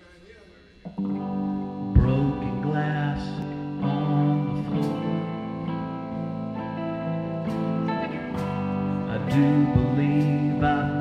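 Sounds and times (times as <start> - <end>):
ringing guitar chord: 0.8 - 11.0.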